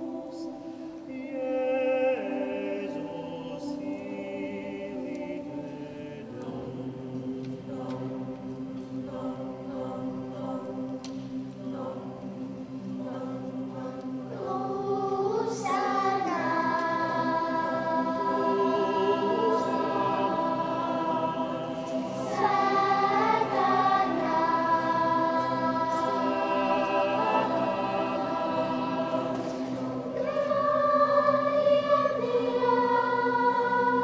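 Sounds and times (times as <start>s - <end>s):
choir singing long held chords: 0.0s - 34.0s.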